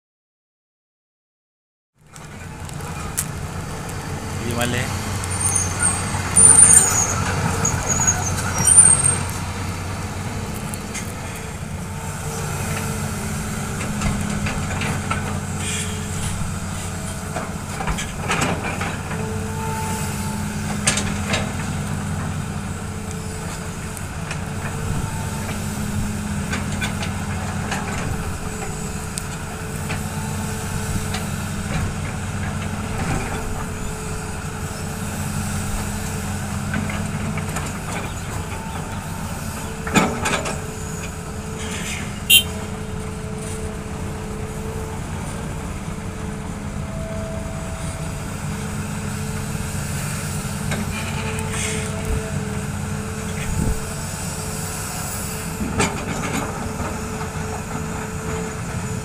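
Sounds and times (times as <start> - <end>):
excavator diesel engine running: 2.0 - 59.0
loud high squeals: 5.3 - 9.4, 41.7 - 42.7.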